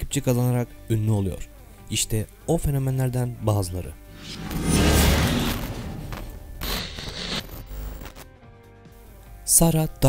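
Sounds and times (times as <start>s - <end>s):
crackling static burst: 4.2s - 8.2s.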